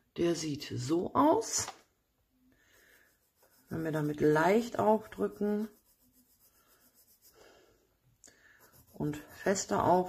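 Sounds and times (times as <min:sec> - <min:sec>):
pencil scratching on paper: 0:02.6 - 0:07.7, 0:08.4 - 0:10.0.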